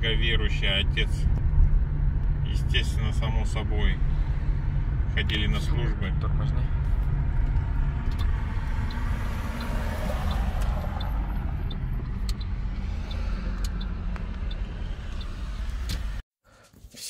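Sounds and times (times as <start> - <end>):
car cabin road rumble: 0.0 - 16.2
faint ticking: 7.4 - 16.2.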